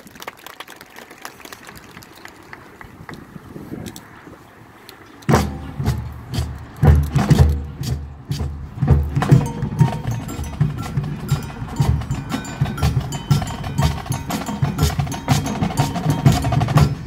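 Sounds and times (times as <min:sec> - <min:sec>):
marching band playing: 0:05.3 - 0:17.0
ringing mallet keyboard notes: 0:09.2 - 0:17.0.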